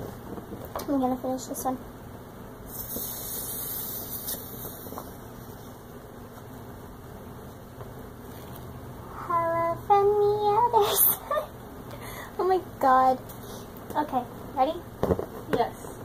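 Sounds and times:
brief hiss: 0:02.7 - 0:05.1.

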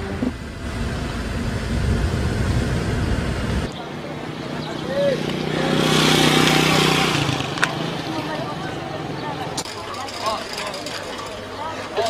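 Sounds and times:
low rumble: 0:00.0 - 0:03.7.

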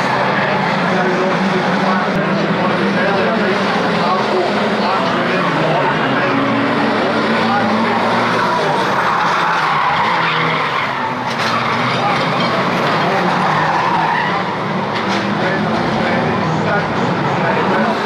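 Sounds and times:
stock car engines racing: 0:00.0 - 0:18.0
tyres skidding on track: 0:00.0 - 0:18.0.

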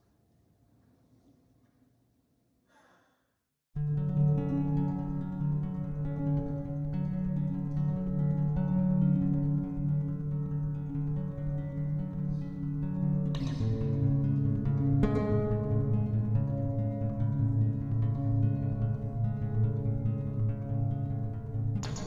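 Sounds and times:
slow instrumental guitar music: 0:03.8 - 0:22.0.

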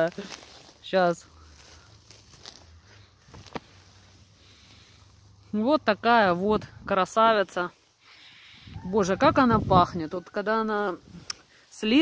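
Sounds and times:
plastic bag rustling: 0:00.0 - 0:04.3
mushroom snapping off: 0:03.3 - 0:03.8.

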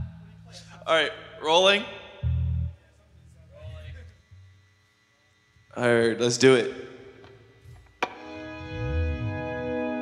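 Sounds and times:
low electric bass note: 0:02.2 - 0:02.8.

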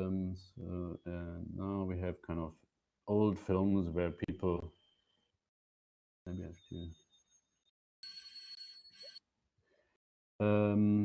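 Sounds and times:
old telephone bell ringing: 0:06.3 - 0:09.2.

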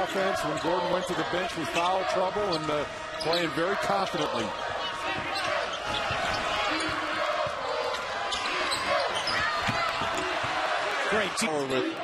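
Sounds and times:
crowd din: 0:00.0 - 0:12.0
shoe squeaks: 0:05.2 - 0:07.1, 0:08.2 - 0:10.2.

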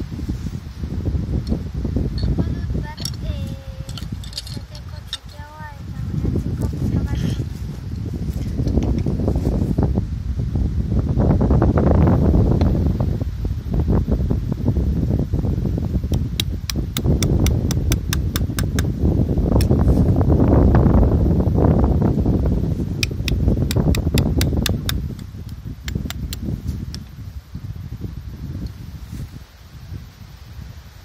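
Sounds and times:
wind on microphone: 0:00.0 - 0:31.0.

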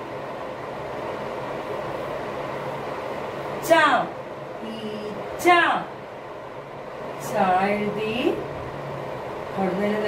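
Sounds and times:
steady background rumble and hiss: 0:00.0 - 0:10.0.

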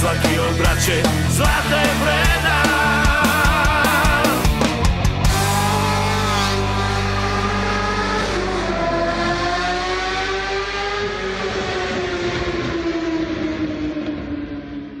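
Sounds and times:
motorcycle engine falling pitch: 0:00.0 - 0:15.0.

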